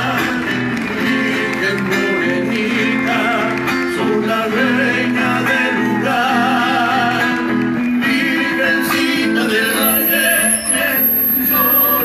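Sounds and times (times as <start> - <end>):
acoustic guitar strumming: 0.0 - 12.0
person singing: 0.0 - 12.0.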